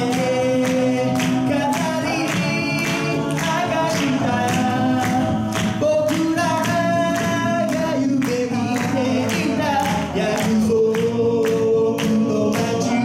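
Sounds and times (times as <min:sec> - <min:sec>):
steady percussive beat: 0:00.0 - 0:13.0
voices singing in close harmony: 0:00.0 - 0:13.0.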